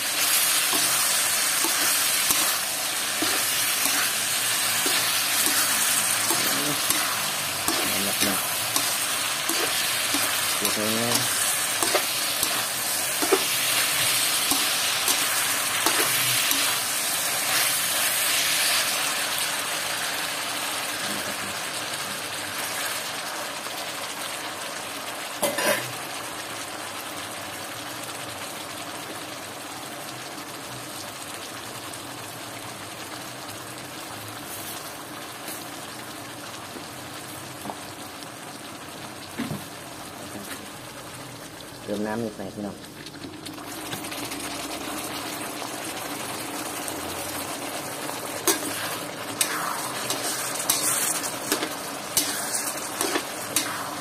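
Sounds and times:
meat sizzling in a wok: 0.0s - 54.0s.

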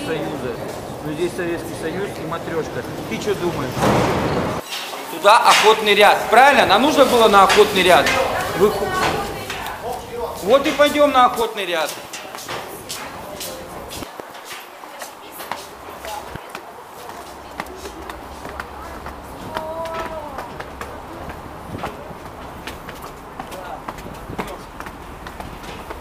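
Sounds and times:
faint voices: 0.0s - 26.0s
low street rumble: 0.0s - 26.0s
footsteps on stone floor: 4.6s - 26.0s.

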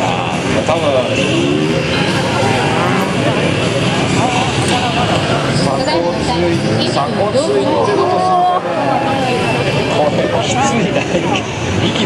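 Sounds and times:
motorcycle engine revving: 0.0s - 7.3s.

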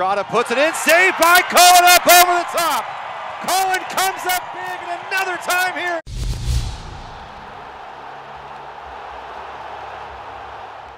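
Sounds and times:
deep low boom: 6.1s - 7.7s
whoosh: 6.1s - 7.7s.

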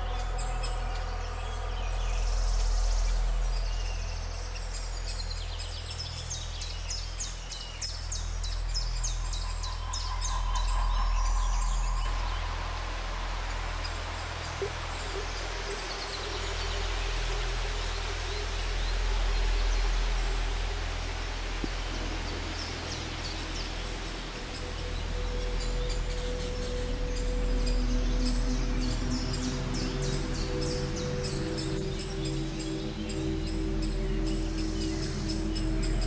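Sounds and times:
music of sustained tones: 0.0s - 36.0s.

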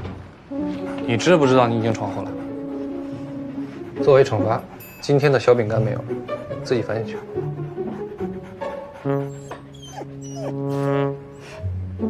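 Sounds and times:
music holding a long note: 0.5s - 12.0s
dog whimpering yips: 8.7s - 11.7s.

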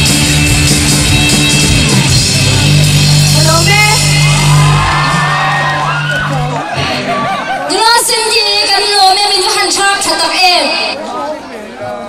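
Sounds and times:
rock band sustained chord: 0.0s - 7.3s
crowd whooping and shouting: 3.1s - 9.2s.

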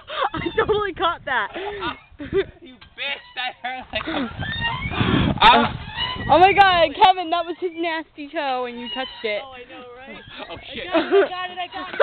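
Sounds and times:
young people laughing: 0.0s - 1.0s, 1.6s - 2.8s, 10.1s - 12.0s.

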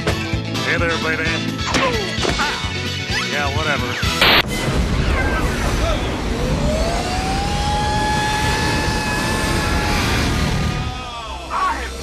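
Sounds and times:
jet engines whine and roar: 4.6s - 12.0s.

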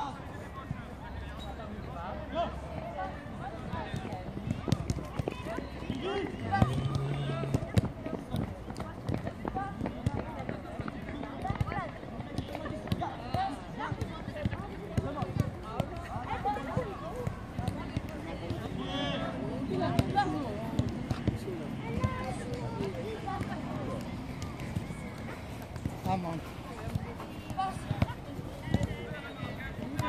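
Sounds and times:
footballs being kicked: 3.7s - 19.2s, 19.8s - 30.0s
children calling and chattering: 11.2s - 30.0s.

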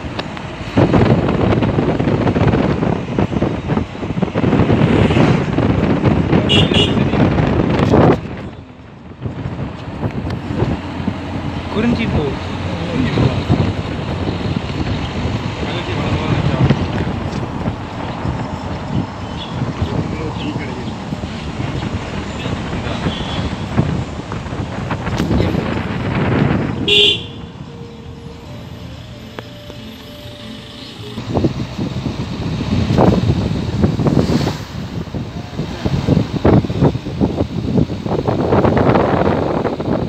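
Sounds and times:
road and wind noise in car: 0.0s - 40.0s
vehicle horn toot: 6.5s - 7.2s, 23.0s - 23.6s, 26.8s - 27.6s.

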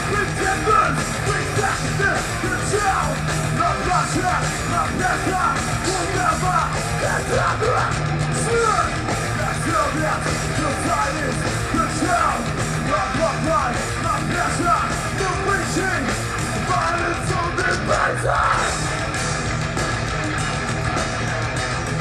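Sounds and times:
live metal band playing: 0.0s - 22.0s.

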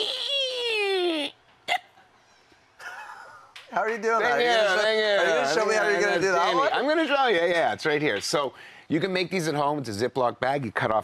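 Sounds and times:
hiccup-like vocal burst: 1.7s - 2.0s.

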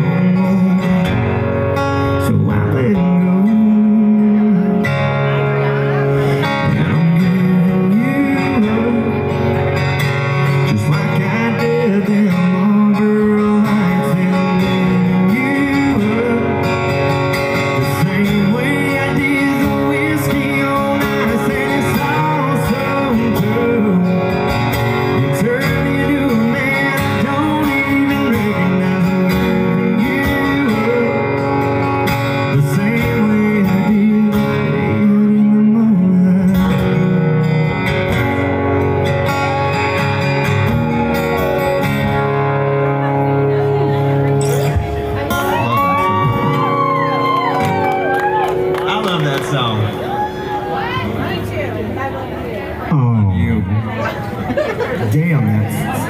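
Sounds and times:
man singing: 0.0s - 38.1s, 44.4s - 47.8s
acoustic guitars playing: 0.0s - 56.0s.

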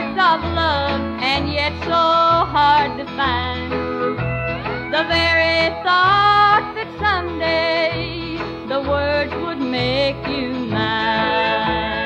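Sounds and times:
woman singing: 0.0s - 4.1s, 4.9s - 12.0s
country band playing: 0.0s - 12.0s
pulsing bass line: 0.0s - 12.0s.

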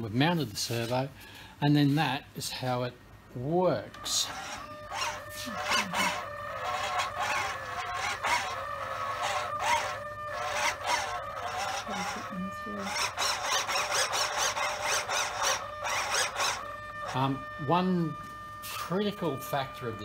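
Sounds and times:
servo whining: 3.4s - 20.0s.

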